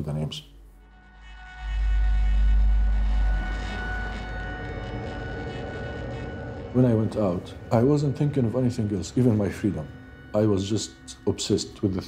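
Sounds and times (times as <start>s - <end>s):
deep low rumble: 0.8s - 10.3s.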